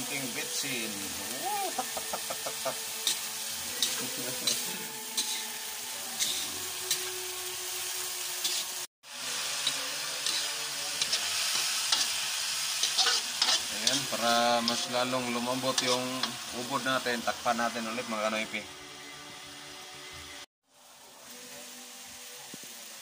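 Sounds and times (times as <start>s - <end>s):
food sizzling in a wok: 0.0s - 23.0s
spatula scraping a pan: 3.0s - 7.1s, 8.4s - 8.8s, 12.8s - 14.9s, 15.7s - 16.4s.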